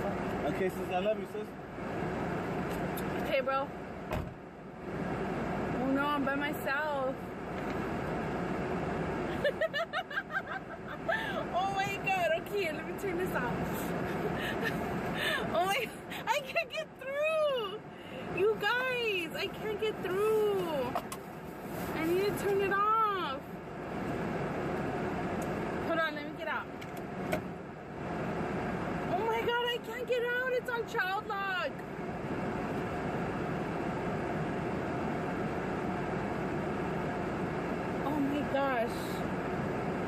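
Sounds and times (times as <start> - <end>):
car interior hum: 0.0 - 40.0.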